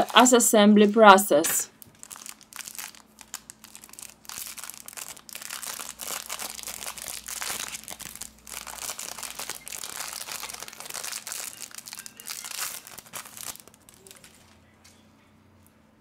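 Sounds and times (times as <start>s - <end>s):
plastic wrapping crinkling: 0.0s - 1.0s, 1.6s - 14.7s.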